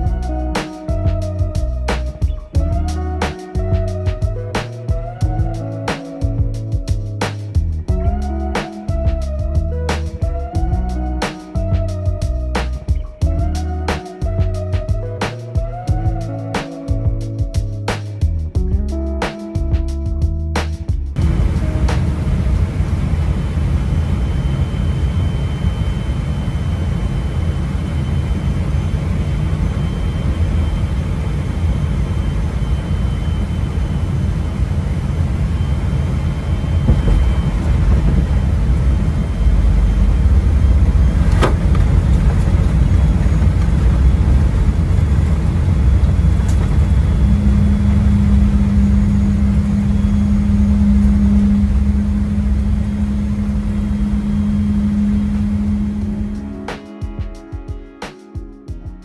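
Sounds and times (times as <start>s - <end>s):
steady low hum: 0.0s - 56.6s
airliner cabin rumble: 21.1s - 56.5s.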